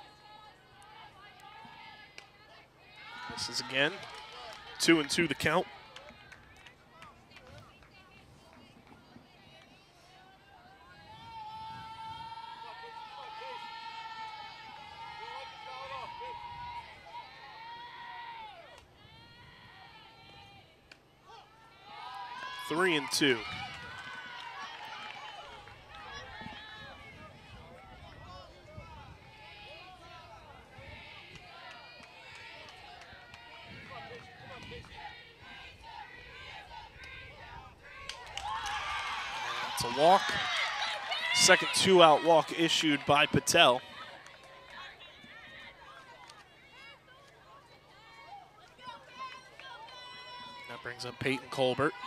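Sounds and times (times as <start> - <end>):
players chanting and cheering: 3.0 - 6.2, 21.9 - 27.1, 29.3 - 45.9.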